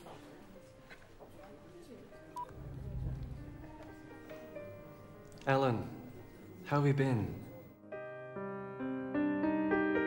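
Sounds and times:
quiet background music: 0:00.0 - 0:10.0
low rumble: 0:02.4 - 0:04.0.

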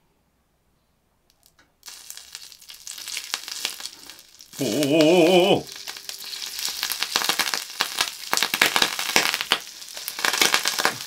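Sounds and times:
hot oil sizzling and crackling: 0:01.4 - 0:11.0.

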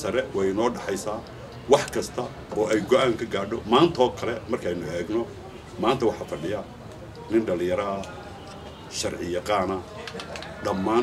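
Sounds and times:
man speaking: 0:00.0 - 0:08.3.

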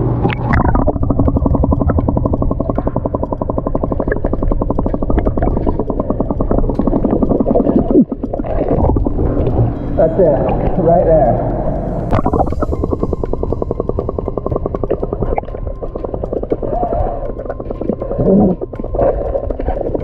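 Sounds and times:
air bubbling through underwater tube: 0:00.0 - 0:20.0.

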